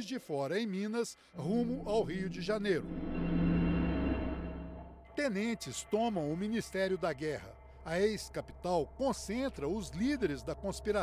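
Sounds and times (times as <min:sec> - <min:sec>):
sustained chord with low drone: 0:01.4 - 0:11.0.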